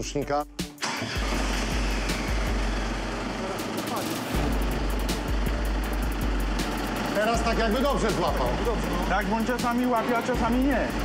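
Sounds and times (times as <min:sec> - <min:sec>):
background music: 0:00.0 - 0:11.0
diesel engine running: 0:00.8 - 0:11.0.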